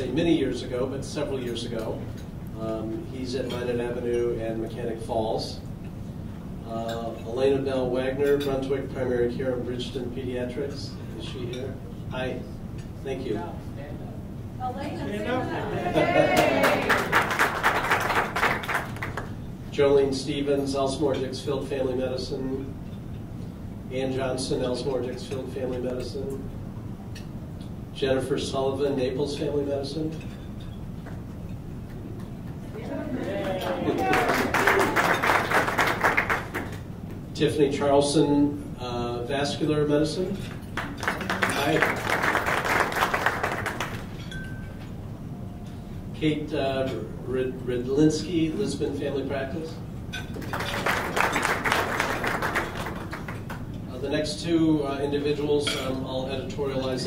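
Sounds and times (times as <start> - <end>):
audience applauding: 15.5 - 19.3, 32.9 - 36.8, 40.8 - 44.2, 50.4 - 53.6.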